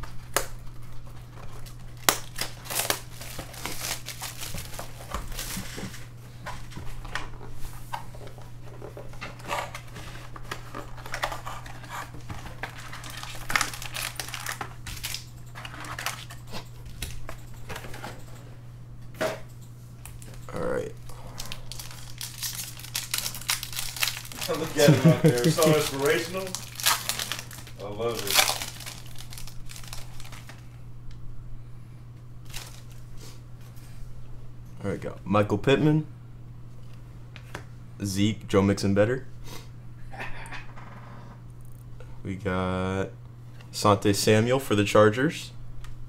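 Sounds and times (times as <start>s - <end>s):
steady low hum: 0.0s - 46.0s
wrappers crinkling and tearing: 1.2s - 6.0s, 10.9s - 16.4s, 21.1s - 30.8s, 32.4s - 33.0s.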